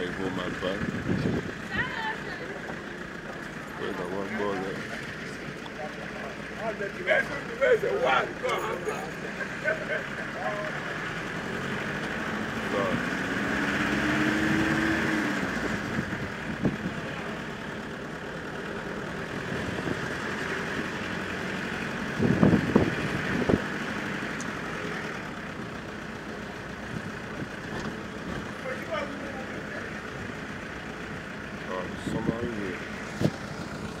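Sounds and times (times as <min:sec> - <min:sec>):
car engine: 0:00.0 - 0:34.0
road noise: 0:00.0 - 0:34.0.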